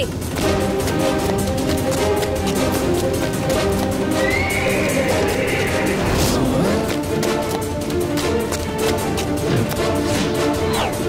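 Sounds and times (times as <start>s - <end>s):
background music: 0.0s - 11.0s
horse whinnying: 4.1s - 6.9s.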